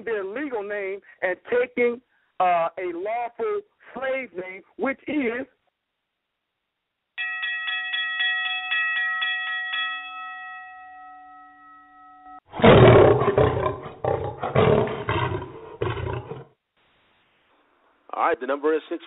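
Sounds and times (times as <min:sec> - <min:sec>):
bell-like chime strikes: 0:07.2 - 0:12.5
roar in surges: 0:12.5 - 0:16.5.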